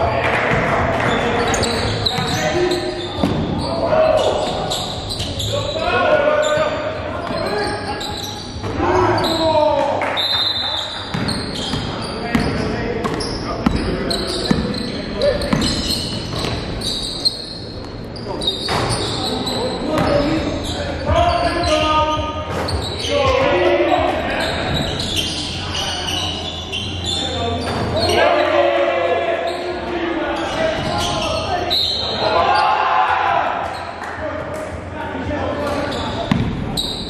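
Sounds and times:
players calling out: 0.0 - 37.0
basketball bouncing: 3.2 - 3.5, 11.1 - 13.9, 36.3 - 36.6.

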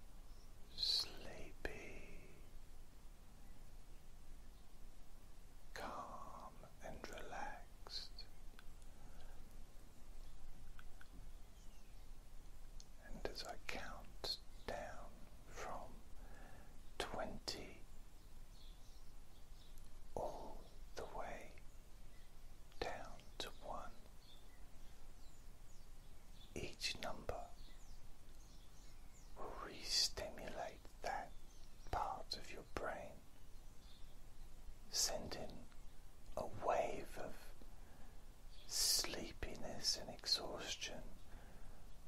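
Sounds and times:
man whispering: 0.7 - 2.6, 5.7 - 9.5, 12.8 - 17.9, 20.1 - 21.7, 22.7 - 24.1, 26.5 - 27.7, 29.4 - 33.3, 34.8 - 37.8, 38.5 - 41.5.

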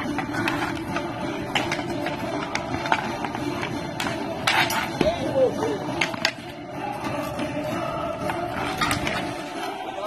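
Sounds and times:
hockey sticks clacking on ball: 0.0 - 7.4, 8.2 - 9.7.

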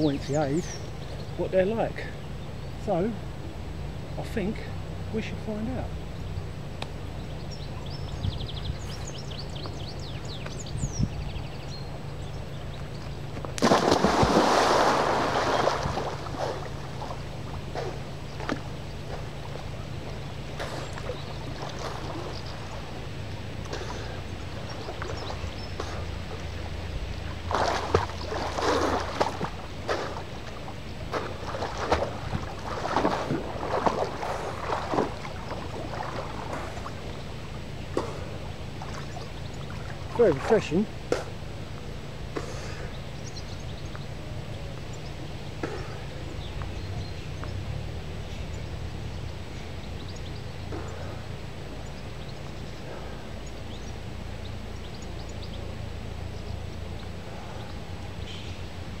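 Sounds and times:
swimming splashes: 13.4 - 43.2
big splash into river: 13.6 - 18.6, 27.5 - 30.2, 31.1 - 36.9.

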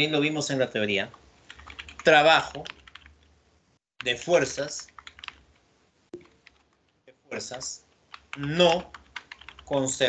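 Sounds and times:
keyboard keystrokes: 8.1 - 9.7.

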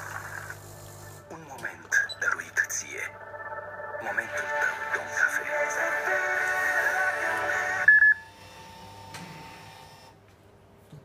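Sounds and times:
advertising music from machine: 0.0 - 7.9.

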